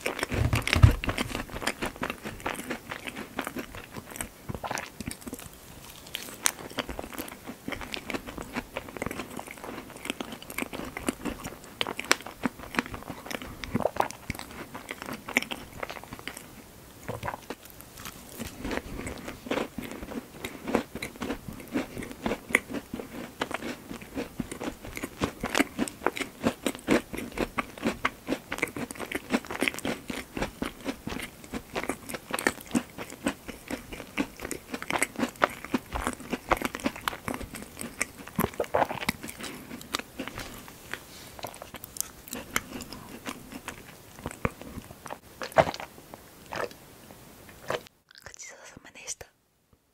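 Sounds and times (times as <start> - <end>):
wet chewing with mouth clicks: 0.0 - 46.8, 47.5 - 48.4.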